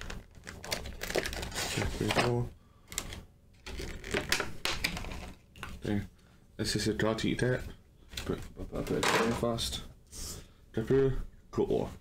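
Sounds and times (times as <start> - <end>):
plastic packaging crackling: 0.0 - 5.7.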